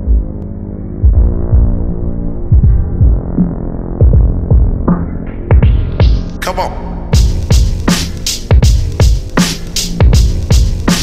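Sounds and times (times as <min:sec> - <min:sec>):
muffled hip-hop instrumental: 0:00.0 - 0:11.0
deep bass-drum hits: 0:01.0 - 0:01.9, 0:02.5 - 0:06.3, 0:07.2 - 0:11.0.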